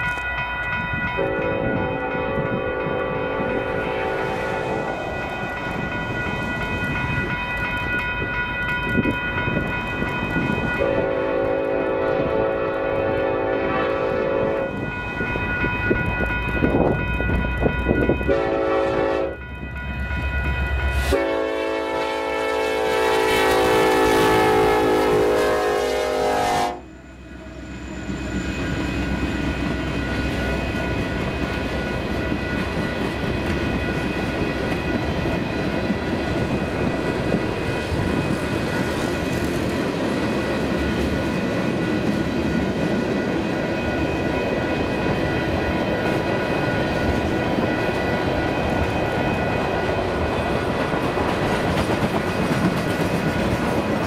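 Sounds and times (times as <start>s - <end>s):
locomotive air horn: 1.2s - 5.1s, 10.8s - 14.8s, 18.3s - 19.4s, 21.0s - 27.0s
freight cars rumbling on rails: 26.8s - 54.0s.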